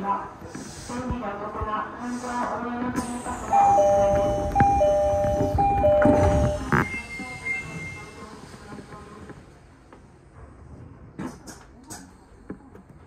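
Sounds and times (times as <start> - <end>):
two-note door chime: 3.6 - 7.2
train doors shutting knock: 3.6 - 7.9.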